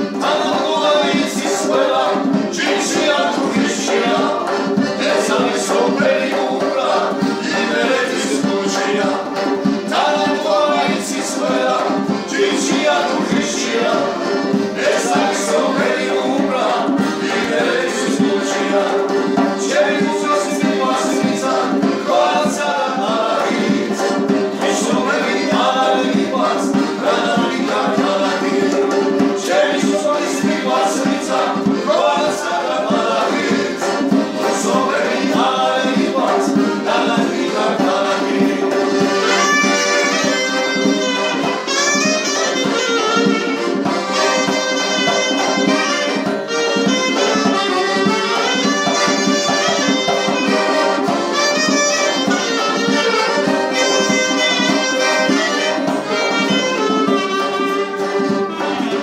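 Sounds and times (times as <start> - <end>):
accordion: 0.0 - 59.0
clarinet melody: 37.5 - 59.0.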